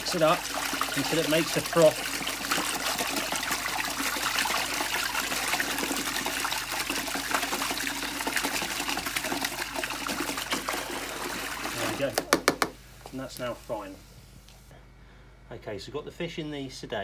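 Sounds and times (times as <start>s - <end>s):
water churning and splashing: 0.0s - 12.1s.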